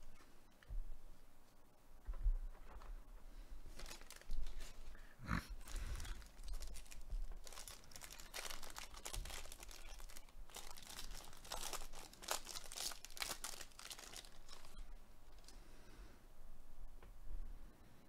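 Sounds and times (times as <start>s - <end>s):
foil wrapper tearing and crinkling: 3.7s - 4.8s, 5.6s - 15.6s.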